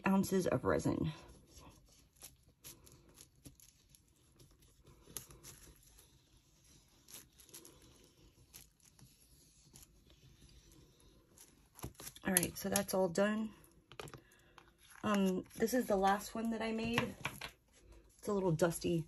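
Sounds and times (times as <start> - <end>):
brush clicks and rustles: 0.0 - 19.0.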